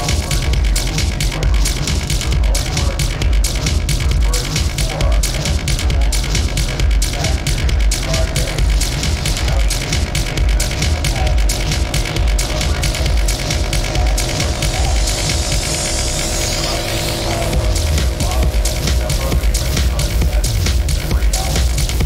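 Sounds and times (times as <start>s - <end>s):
hard techno music: 0.0s - 22.0s.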